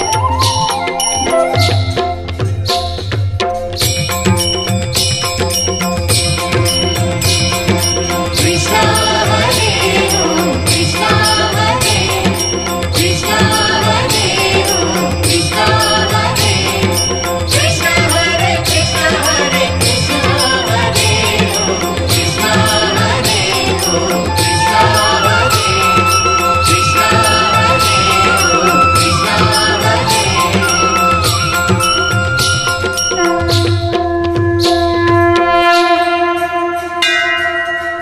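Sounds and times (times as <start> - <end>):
ringing bell tones music: 0.0 - 3.0, 3.8 - 34.1, 35.7 - 38.0.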